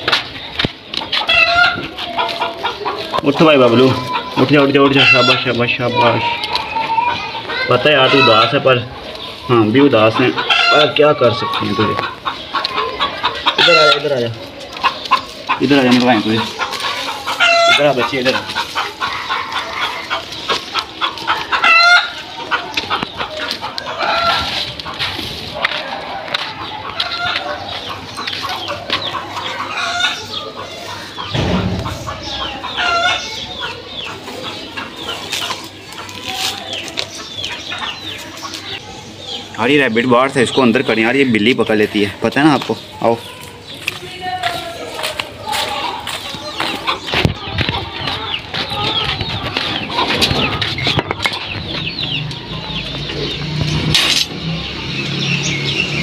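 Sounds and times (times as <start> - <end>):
chickens clucking: 0.0 - 56.0
small birds chirping: 0.0 - 56.0
low rumble: 31.4 - 33.1.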